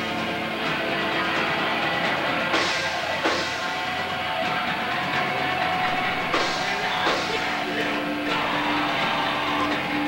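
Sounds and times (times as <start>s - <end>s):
distorted electric guitar ringing: 5.4s - 10.0s.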